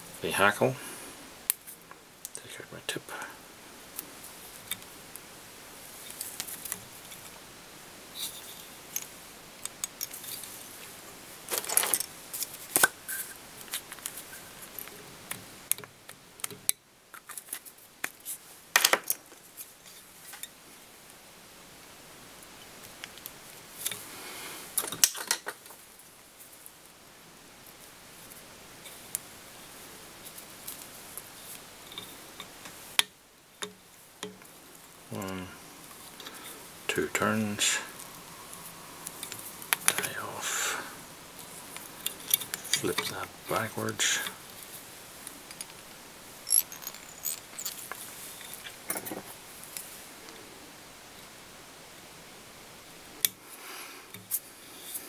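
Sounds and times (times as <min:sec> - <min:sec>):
light clicks and rustles of tools: 0:08.2 - 0:20.6, 0:30.2 - 0:34.5, 0:41.4 - 0:45.9, 0:46.5 - 0:50.4.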